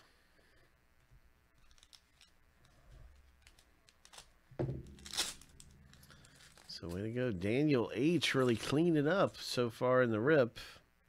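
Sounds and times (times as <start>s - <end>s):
trading cards handled: 1.5s - 7.1s
foil card pack rustling: 3.0s - 7.5s, 8.1s - 9.0s.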